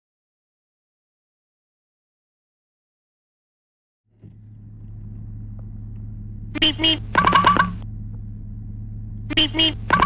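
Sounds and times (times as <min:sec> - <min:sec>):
low hum: 0:04.1 - 0:10.0
cartoon beep beep honking: 0:06.6 - 0:07.8, 0:09.3 - 0:10.0.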